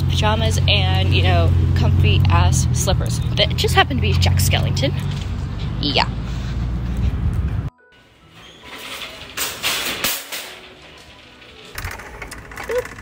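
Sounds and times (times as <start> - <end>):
shop ambience: 0.0 - 13.0
background music: 7.7 - 12.8.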